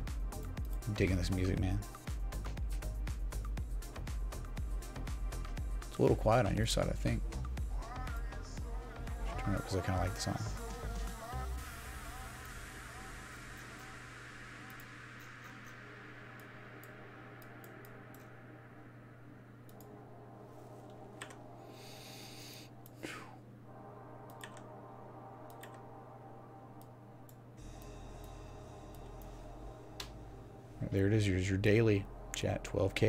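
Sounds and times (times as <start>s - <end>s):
faint low hum: 6.0s - 33.0s.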